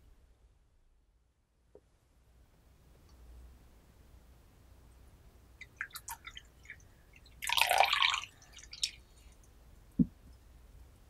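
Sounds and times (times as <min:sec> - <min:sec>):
small drips: 0:05.6 - 0:09.6
tea pouring into a teacup: 0:07.4 - 0:09.0
small tap: 0:10.0 - 0:10.2.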